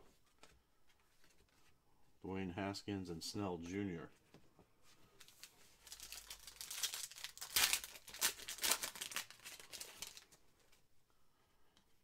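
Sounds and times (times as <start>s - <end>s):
foil wrapper crinkling and ripping: 5.2s - 10.4s.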